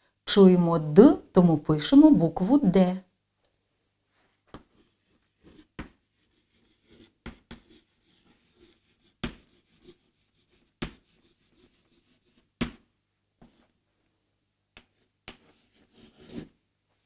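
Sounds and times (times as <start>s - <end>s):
chalk writing on chalkboard: 4.5s - 13.7s, 14.8s - 16.6s.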